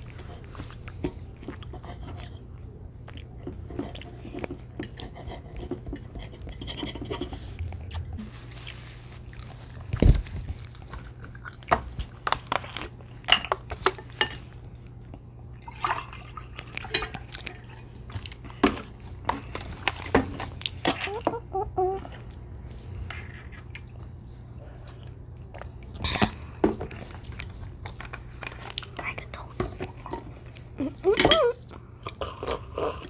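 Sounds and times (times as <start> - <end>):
chewing: 0.0 - 21.2.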